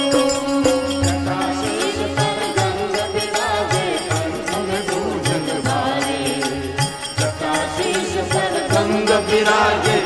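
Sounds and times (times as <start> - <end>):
man singing devotional song: 0.0 - 10.0
stringed instruments: 0.0 - 10.0.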